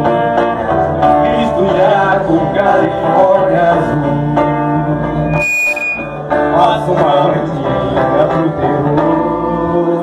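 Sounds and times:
electric bass: 0.0s - 7.0s
acoustic guitar: 0.0s - 10.0s
high hiss with whistling tone: 5.3s - 6.1s.

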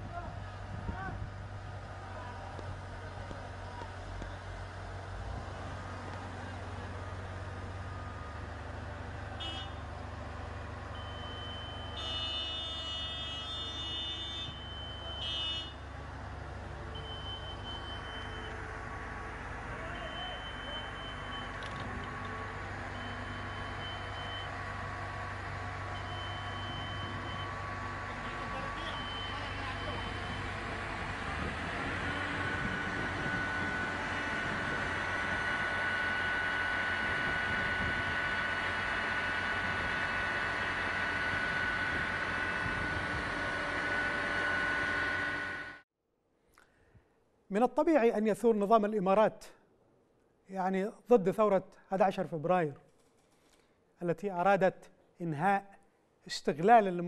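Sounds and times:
heavy vehicle engine running: 0.0s - 45.8s
backup warning beeps: 11.0s - 12.0s, 14.3s - 15.7s, 17.0s - 18.6s, 19.8s - 21.6s, 22.9s - 24.6s, 25.9s - 27.6s, 28.7s - 30.6s.

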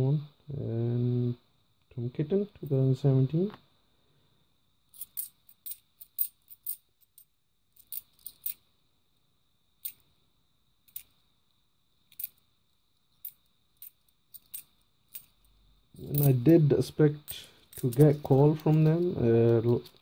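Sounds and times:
coins clinking: 4.9s - 8.6s, 10.9s - 11.2s, 12.1s - 12.4s, 13.1s - 16.5s, 17.3s - 20.0s.

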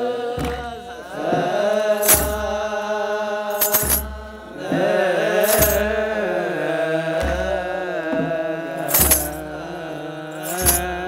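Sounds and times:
men chanting together: 0.0s - 11.0s
drum beats: 0.4s - 2.6s, 3.5s - 6.2s, 7.2s - 9.6s, 10.4s - 11.0s
metal sistra shaking: 2.0s - 2.5s, 3.5s - 4.2s, 5.4s - 5.9s, 8.8s - 9.4s, 10.4s - 11.0s.

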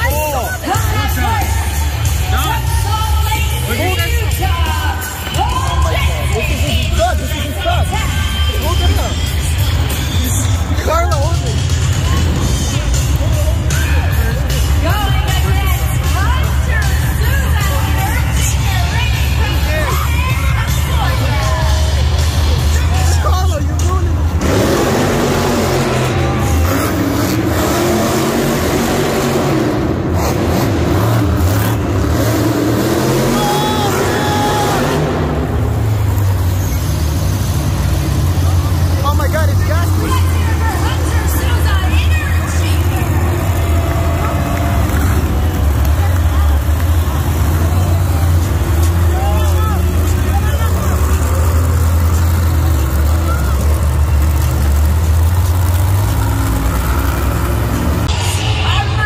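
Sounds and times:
monster truck engines: 0.0s - 59.0s.

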